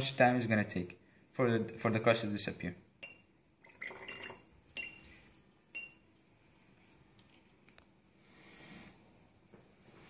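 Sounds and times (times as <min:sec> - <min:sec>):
glass clinking on glass: 0:03.0 - 0:06.0
liquid pouring into flask: 0:03.6 - 0:04.5.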